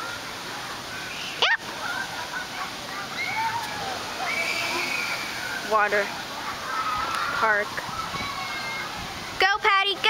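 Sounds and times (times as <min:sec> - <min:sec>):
faint distant voices: 0:00.0 - 0:09.4
water rushing: 0:00.0 - 0:10.0.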